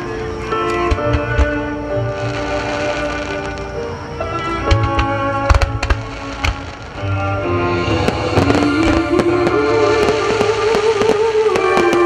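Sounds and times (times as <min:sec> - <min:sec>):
loud recorded music: 0:00.0 - 0:11.9
fireworks bangs: 0:00.5 - 0:12.0.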